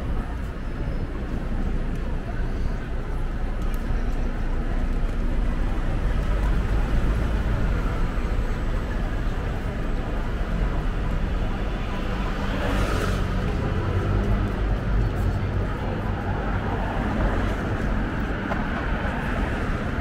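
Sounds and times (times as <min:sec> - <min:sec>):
crowd chatter: 0:00.0 - 0:20.0
road traffic: 0:00.0 - 0:20.0.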